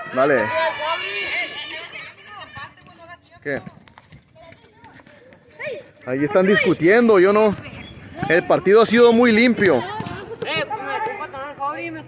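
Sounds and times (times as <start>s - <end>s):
distant boys arguing: 0.0s - 3.7s, 4.4s - 12.0s
footsteps on concrete: 2.3s - 12.0s.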